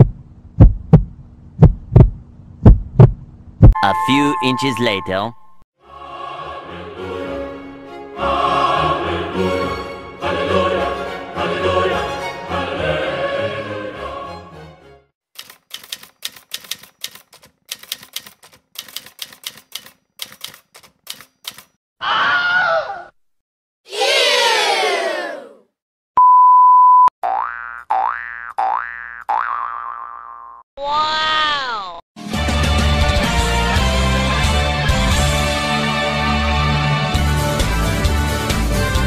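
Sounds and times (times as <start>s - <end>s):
steady beep: 3.8s - 5.6s, 26.2s - 27.1s
sharp clicks: 15.4s - 21.8s
falling wow voice: 22.0s - 23.1s, 30.8s - 32.0s
falling eeeww voice: 30.8s - 32.0s.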